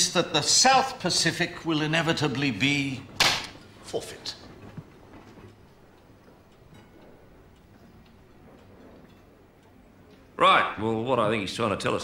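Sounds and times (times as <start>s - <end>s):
faint ticking: 0.0s - 12.0s.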